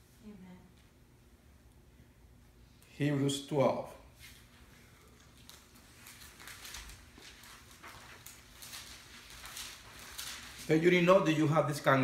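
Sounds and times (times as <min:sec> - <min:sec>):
pages rustling: 0:04.3 - 0:11.4.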